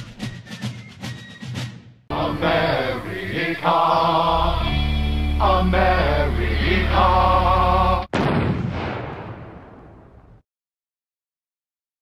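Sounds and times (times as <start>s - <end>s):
explosion blast: 8.1s - 10.4s.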